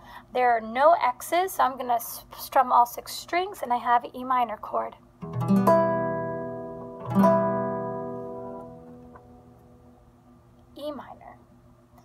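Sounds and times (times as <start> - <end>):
classical guitar strumming: 5.2 - 10.0.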